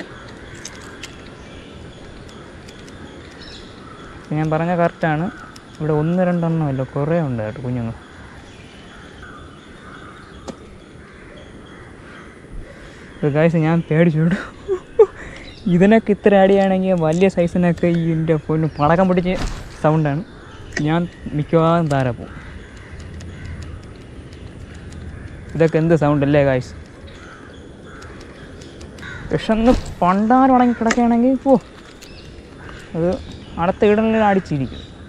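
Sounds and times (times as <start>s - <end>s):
crows cawing in distance: 0.0s - 13.8s, 17.6s - 35.0s
faint bird calls: 0.0s - 35.0s
sharp click: 19.2s - 25.8s, 28.0s - 32.2s.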